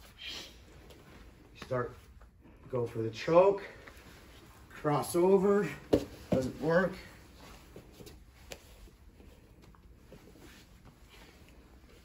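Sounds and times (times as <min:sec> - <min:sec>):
cloth rustling on a mat: 0:06.0 - 0:12.0.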